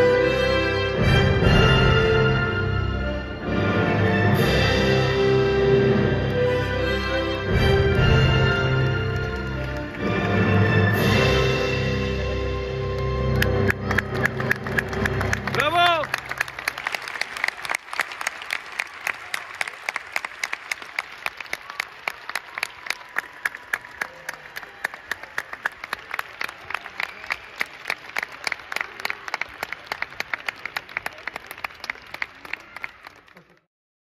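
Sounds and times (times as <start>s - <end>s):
audience applauding: 8.2s - 10.7s, 12.9s - 33.7s.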